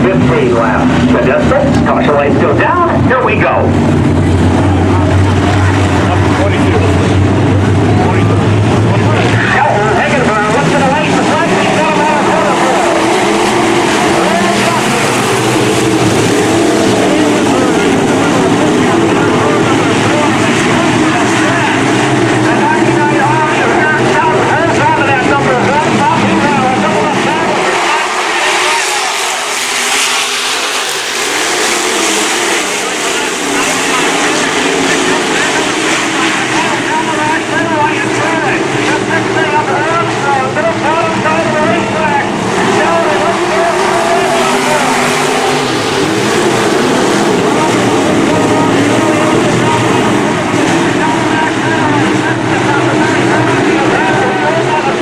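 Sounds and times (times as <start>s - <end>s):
race car engines at full throttle: 0.0s - 55.0s.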